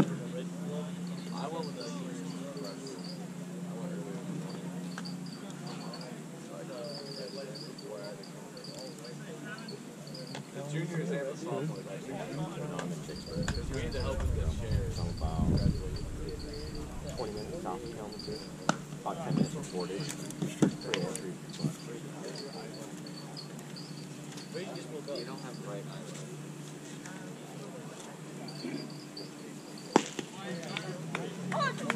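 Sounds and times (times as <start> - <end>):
murmur of distant voices: 0.0 - 31.9
insects chirping: 13.1 - 25.8.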